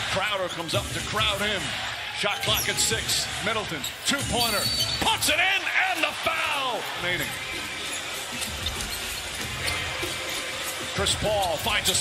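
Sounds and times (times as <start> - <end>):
arena crowd noise: 0.0 - 12.0
music playing: 6.9 - 12.0.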